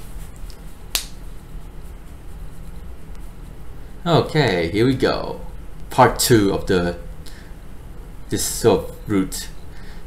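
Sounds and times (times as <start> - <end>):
low room hum: 0.0 - 10.0
sharp click: 0.9 - 1.2.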